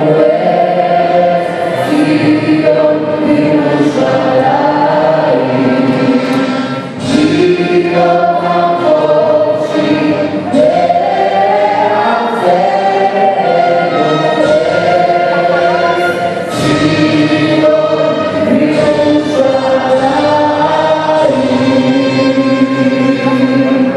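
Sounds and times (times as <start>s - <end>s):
choir singing an anthem: 0.0s - 23.9s.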